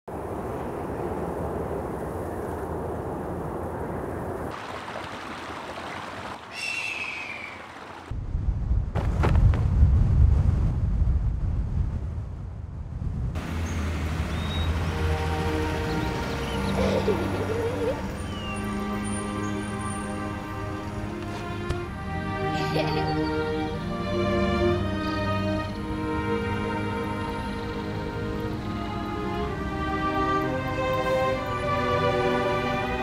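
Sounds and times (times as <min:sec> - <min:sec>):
large bird cry: 0:06.5 - 0:07.7, 0:18.1 - 0:19.8
wind rushing: 0:08.1 - 0:13.5
deep wind rumble: 0:08.1 - 0:15.2
soft instrumental music: 0:14.7 - 0:33.0.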